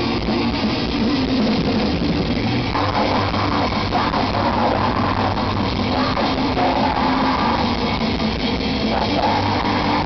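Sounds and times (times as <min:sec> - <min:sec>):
distorted electric guitars: 0:00.0 - 0:10.0
fast drumming: 0:00.0 - 0:10.0.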